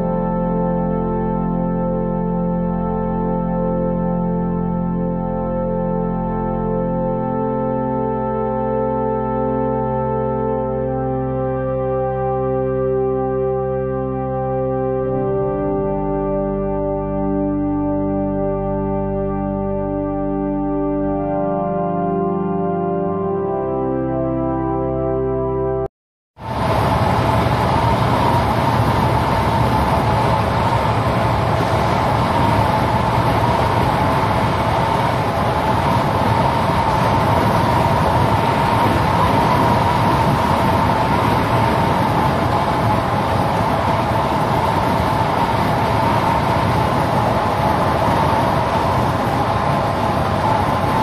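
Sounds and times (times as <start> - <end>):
road noise on wet streets: 26.4 - 51.0
truck engine noise: 26.4 - 51.0.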